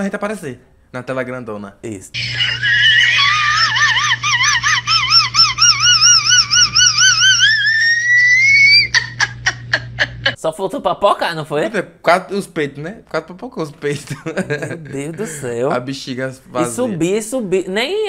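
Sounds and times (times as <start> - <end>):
woman squealing high-pitched: 2.2 - 9.6
woman laughing: 2.2 - 10.4.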